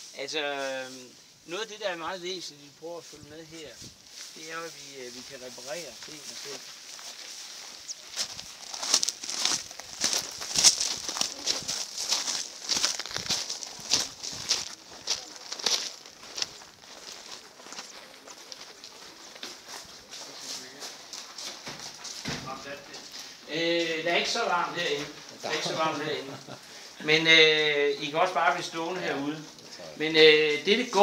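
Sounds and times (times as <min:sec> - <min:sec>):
footsteps crunching on gravel: 0:03.0 - 0:29.8.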